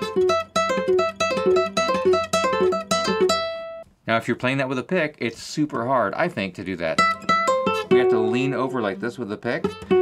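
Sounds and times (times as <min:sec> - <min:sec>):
fingerpicked classical guitar: 0:00.0 - 0:03.9, 0:07.0 - 0:10.0.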